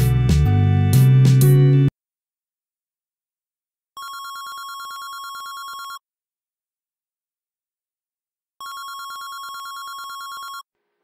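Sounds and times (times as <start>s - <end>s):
telephone ringing: 4.0s - 6.0s, 8.6s - 10.7s.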